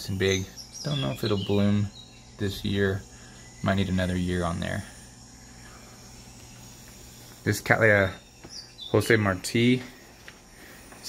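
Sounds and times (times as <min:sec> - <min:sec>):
crickets chirping through speaker: 0:00.0 - 0:11.0
low steady hum: 0:00.0 - 0:11.0.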